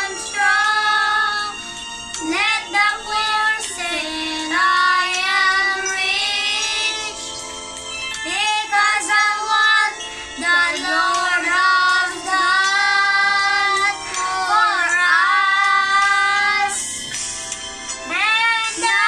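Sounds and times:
boys singing together: 0.0 - 1.5, 2.2 - 7.2, 8.2 - 17.0, 18.2 - 19.0.

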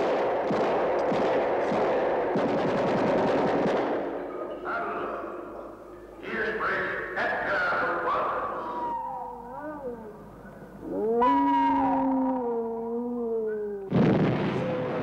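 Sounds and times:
animal howls: 8.2 - 14.0.

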